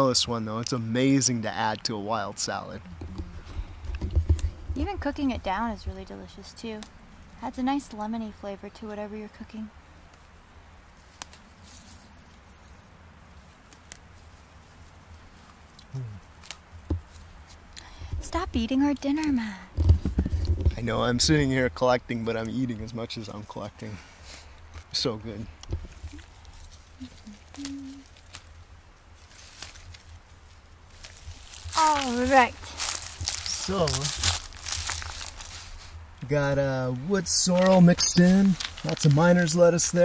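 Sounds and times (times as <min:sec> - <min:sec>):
leaves rustling: 0:00.1 - 0:40.0
plants snapping and rustling: 0:11.0 - 0:12.4, 0:13.4 - 0:14.8, 0:15.4 - 0:17.9, 0:25.6 - 0:36.6, 0:37.4 - 0:39.6
person humming low: 0:15.9 - 0:16.3, 0:27.0 - 0:28.1
low steady rumble: 0:17.0 - 0:23.9.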